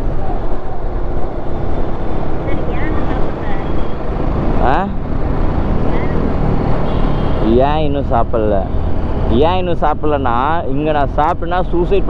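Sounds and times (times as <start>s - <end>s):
wind and road noise: 0.0s - 12.0s.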